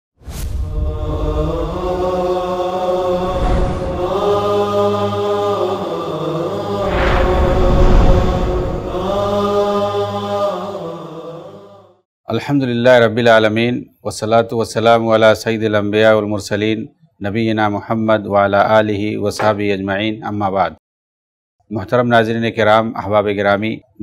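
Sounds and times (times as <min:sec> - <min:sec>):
deep rushing swell: 0:00.2 - 0:10.9
chant-like held vocal chords: 0:00.3 - 0:12.1.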